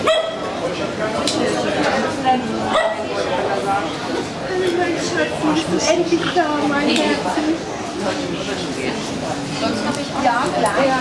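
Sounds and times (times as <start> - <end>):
dog yelping: 0.0 - 0.5
people chattering: 0.0 - 11.0.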